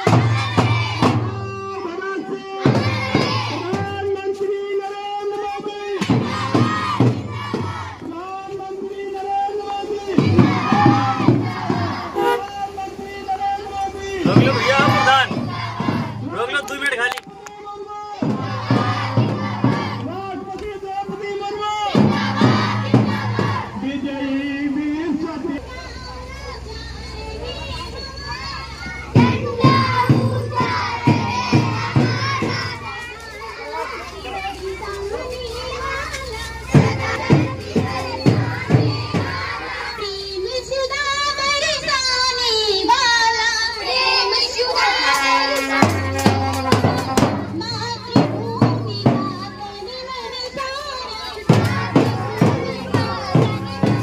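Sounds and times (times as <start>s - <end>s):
regular low drum beats: 0.0s - 2.0s, 2.6s - 4.4s, 5.9s - 8.9s, 9.8s - 12.5s, 13.8s - 17.4s, 18.1s - 24.4s, 28.8s - 42.0s, 43.8s - 54.0s
children chanting in unison: 0.0s - 4.1s, 5.3s - 8.2s, 9.7s - 16.7s, 17.9s - 20.5s, 21.3s - 24.0s, 25.6s - 54.0s.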